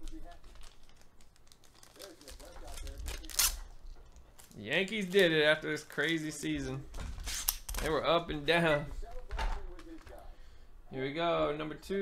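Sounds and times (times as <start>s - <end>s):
cards and wrappers crinkling: 0.0s - 8.2s, 9.0s - 10.3s.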